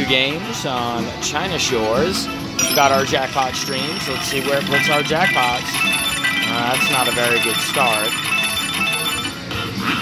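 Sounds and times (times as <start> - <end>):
slot machine game music: 1.3 - 10.0
chiming electronic tones: 2.6 - 9.4.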